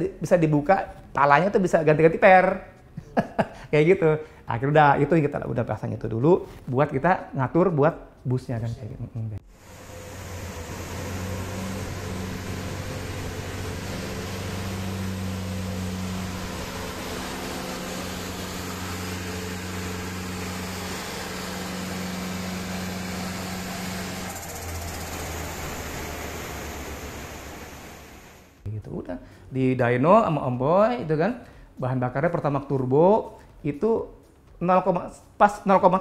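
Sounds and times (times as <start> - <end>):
engine running on dyno: 9.5 - 28.6.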